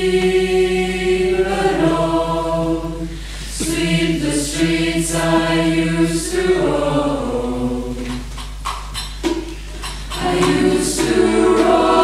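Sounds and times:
choir holding a note: 0.0s - 8.2s, 10.2s - 12.0s
sharp percussion taps: 8.0s - 12.0s.

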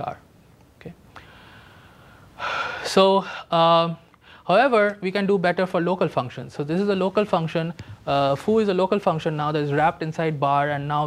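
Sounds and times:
man speaking: 2.8s - 11.0s.

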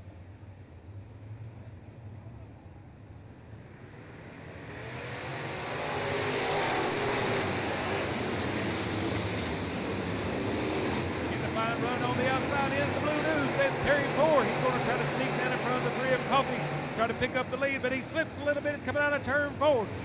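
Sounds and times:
race car engines accelerating: 0.8s - 20.0s.

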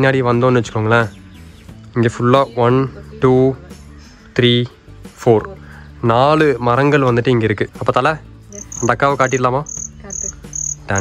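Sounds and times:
cricket chirping: 8.5s - 11.0s.

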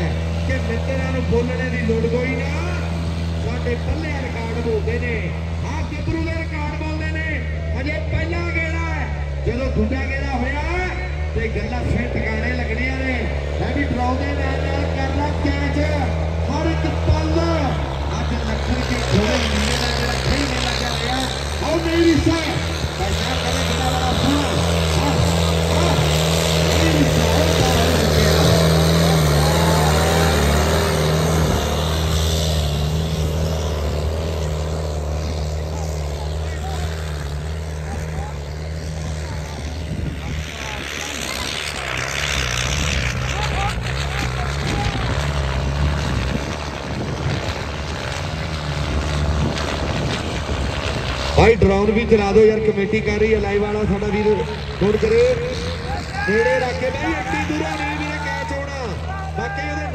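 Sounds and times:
tractor engine under load: 0.0s - 59.9s.

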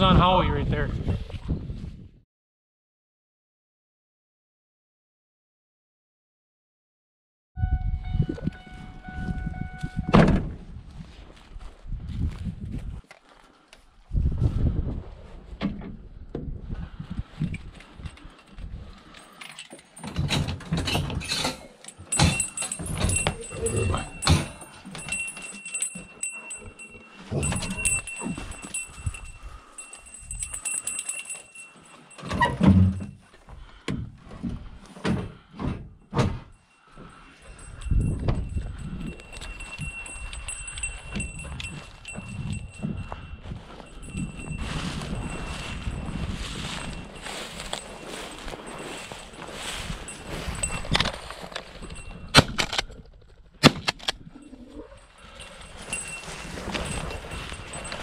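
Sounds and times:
footsteps through dry grass: 8.6s - 15.5s, 38.9s - 52.2s, 55.6s - 58.0s.

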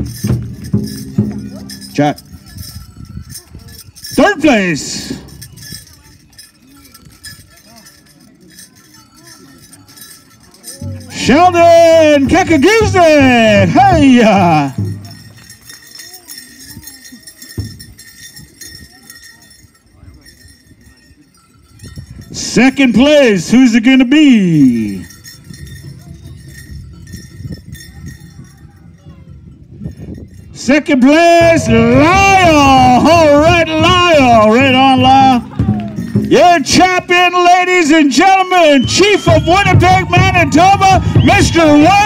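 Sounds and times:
drum struck in steady beat: 0.0s - 2.9s, 31.4s - 36.4s
crowd voices: 0.0s - 42.0s
jingling bells: 0.0s - 42.0s.

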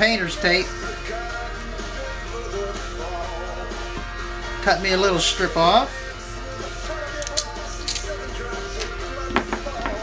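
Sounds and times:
background guitar music: 0.0s - 10.0s.

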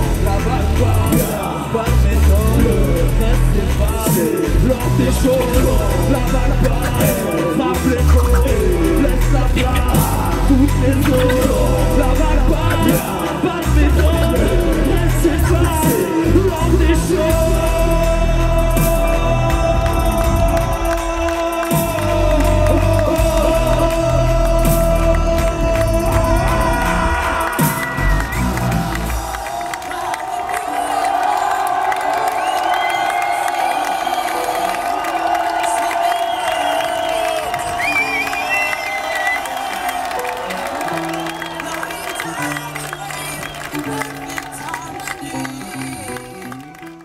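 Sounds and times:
hip hop beat with heavy bass: 0.0s - 30.0s
crowd cheering and whooping: 5.3s - 47.0s.

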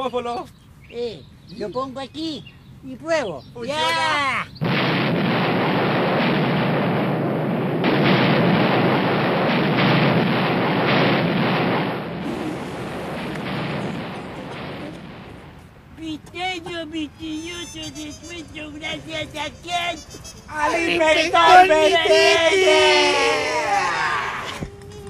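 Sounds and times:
explosive blast: 4.6s - 15.8s
building collapsing rumble: 4.6s - 15.9s.

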